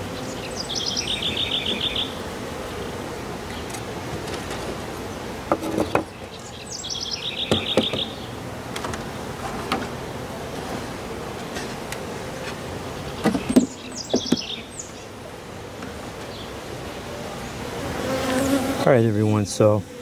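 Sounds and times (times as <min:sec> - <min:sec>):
songbird singing: 0:00.0 - 0:08.5, 0:12.8 - 0:17.7
honey bees humming: 0:00.0 - 0:20.0
beehive covers knocking: 0:07.4 - 0:10.0, 0:12.6 - 0:14.6.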